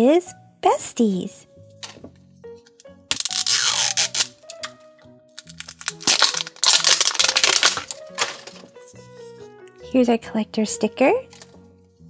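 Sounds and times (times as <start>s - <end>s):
background music: 0.0s - 12.0s
plastic wrapping crinkling: 3.1s - 4.5s, 5.4s - 8.7s.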